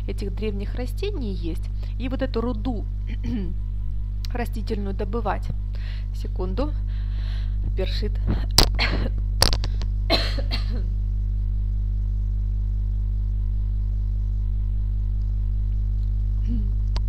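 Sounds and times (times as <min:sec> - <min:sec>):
steady electrical hum: 0:00.0 - 0:17.0
woman clearing her throat: 0:08.8 - 0:09.2, 0:10.1 - 0:10.9, 0:16.4 - 0:16.8.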